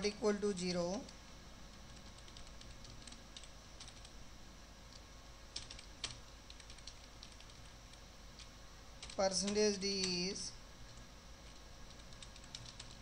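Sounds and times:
typing on computer keyboard: 1.0s - 4.1s, 4.9s - 9.6s, 10.9s - 13.0s.

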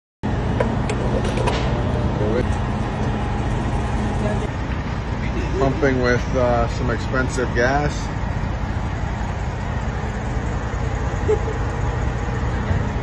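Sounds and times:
vehicle rumble: 0.2s - 13.0s
man speaking: 5.4s - 8.1s.

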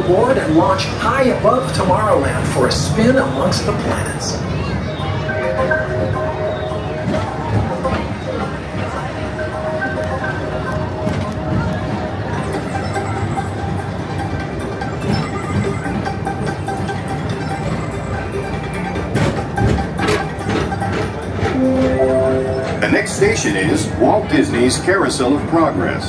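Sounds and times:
ride vehicle rumbling on track: 0.0s - 26.0s
music: 4.6s - 23.6s.

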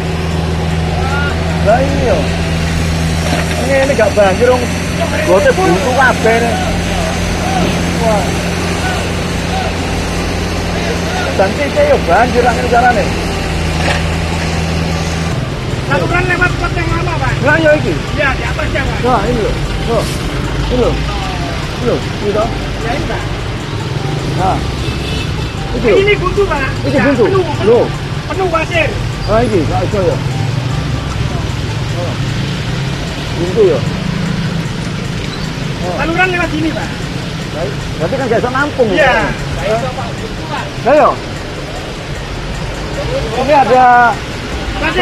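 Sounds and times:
engine idling: 0.0s - 45.0s
person speaking: 25.6s - 32.3s.

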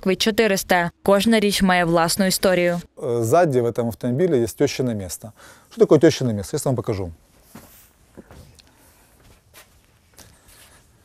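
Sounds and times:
footsteps on hard floor: 7.4s - 8.6s.

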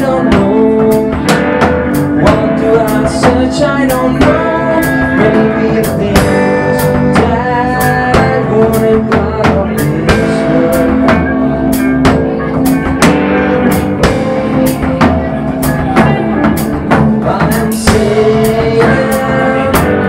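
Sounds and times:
bass guitar: 0.0s - 20.0s
drum kit beat: 0.0s - 20.0s
electric guitar: 0.0s - 20.0s.

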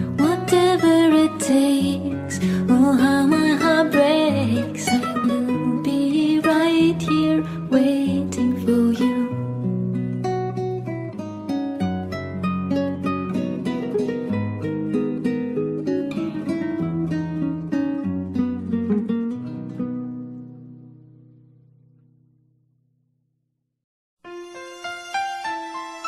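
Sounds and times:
acoustic guitar picking: 0.0s - 22.2s.

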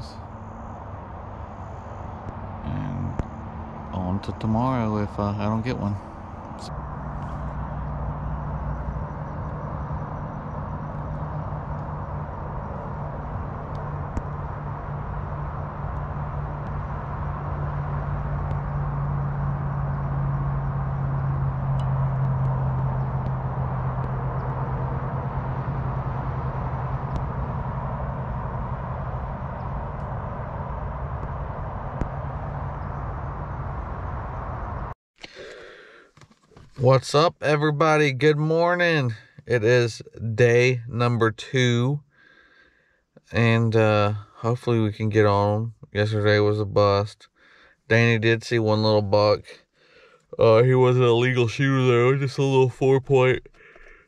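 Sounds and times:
distant engine drone: 0.0s - 54.0s.

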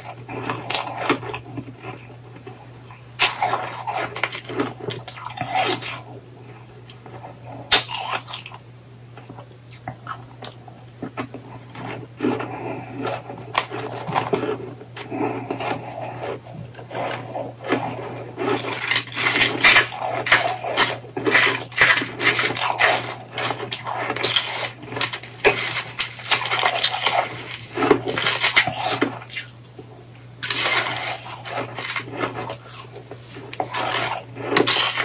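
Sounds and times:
fork scraping ice: 0.0s - 2.1s, 3.2s - 6.2s, 11.1s - 35.0s
shaved ice being chewed: 0.0s - 8.6s, 9.2s - 35.0s
faint steady hum: 0.0s - 35.0s.

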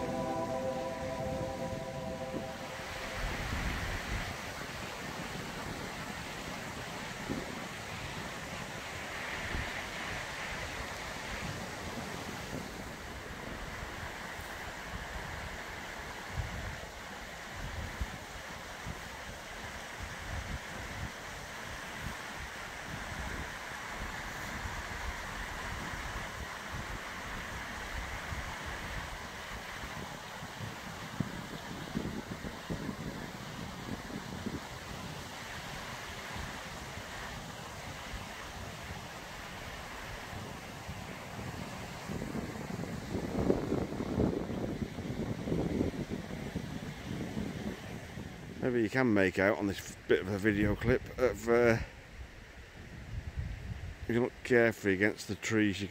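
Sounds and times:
wind buffeting microphone: 29.8s - 35.8s, 40.1s - 48.6s.

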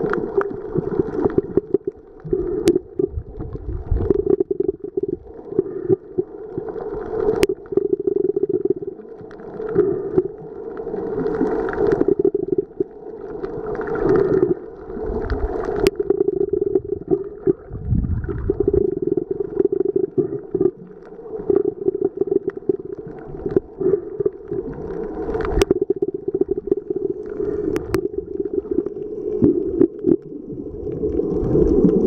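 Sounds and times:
underwater rumble of moving water: 0.0s - 32.0s.

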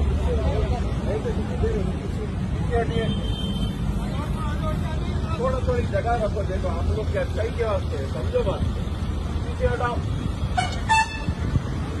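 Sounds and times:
street traffic rumble: 0.0s - 12.0s
vehicle horn tooting: 10.5s - 11.4s.

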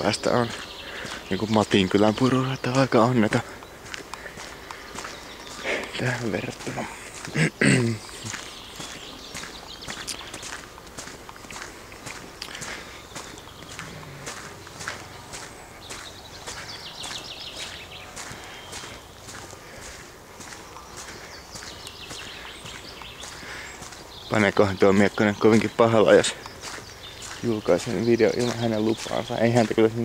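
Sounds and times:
footsteps on unpaved trail: 0.0s - 30.0s.

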